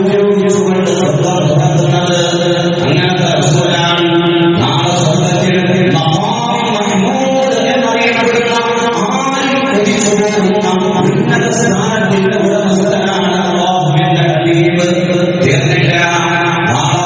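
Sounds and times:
man chanting recitation: 0:00.0 - 0:17.0.

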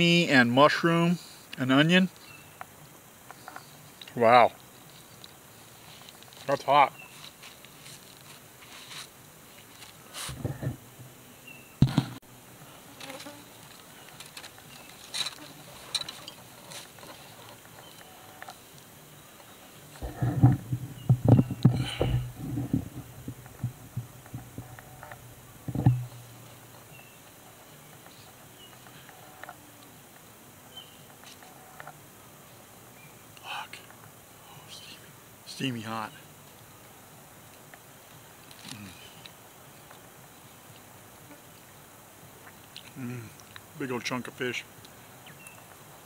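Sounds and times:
flying insect buzzing: 0:12.6 - 0:17.0, 0:19.6 - 0:32.2.

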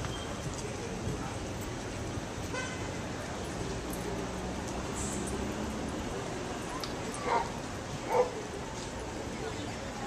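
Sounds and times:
street background noise: 0:00.0 - 0:10.0.

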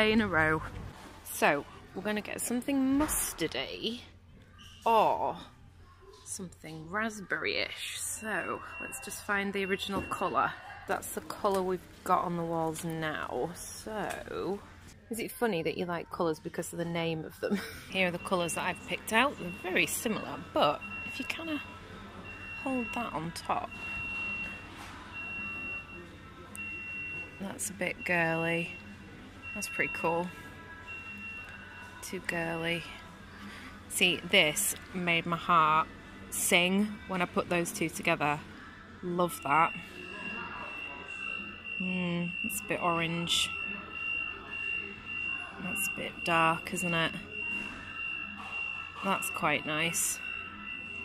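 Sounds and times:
electronic warning beeps: 0:07.8 - 0:10.6, 0:17.8 - 0:38.4, 0:39.0 - 0:51.0
faint background voices: 0:18.2 - 0:50.9.

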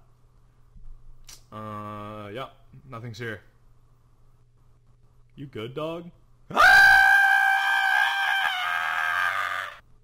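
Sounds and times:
person screaming: 0:06.5 - 0:09.8.

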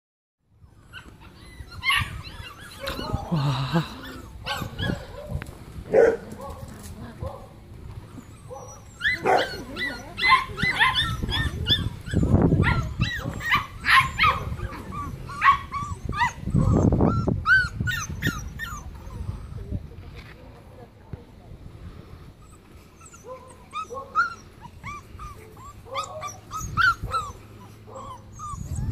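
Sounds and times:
puppies yelping and whining: 0:00.6 - 0:05.4, 0:07.9 - 0:19.7, 0:22.4 - 0:28.9
dogs barking: 0:04.4 - 0:06.6, 0:08.4 - 0:11.9, 0:12.6 - 0:16.8, 0:25.4 - 0:28.3.

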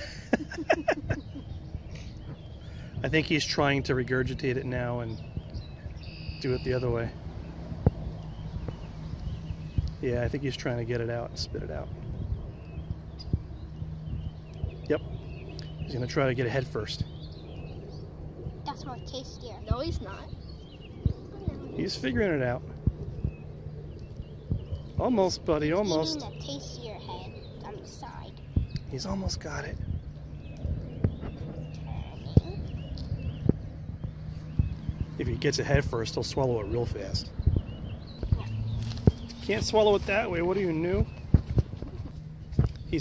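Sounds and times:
low rumble: 0:00.0 - 0:43.0
faint high chirps: 0:05.2 - 0:07.1.

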